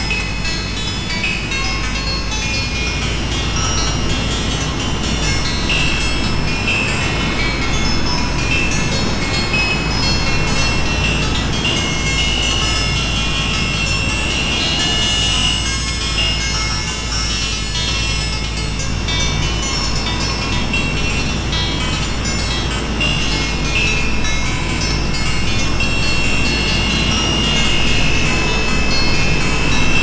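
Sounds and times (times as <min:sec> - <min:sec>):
deep synthesizer drone: 0:00.0 - 0:30.0
high whistling tones: 0:00.0 - 0:30.0.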